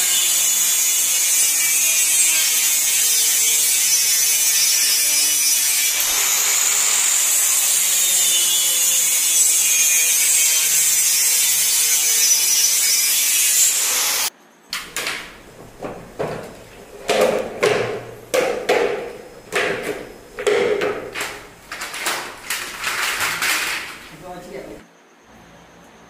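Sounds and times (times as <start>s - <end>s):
knocks: 14.8s - 22.3s
circular saw cutting plastic board: 15.0s - 24.2s.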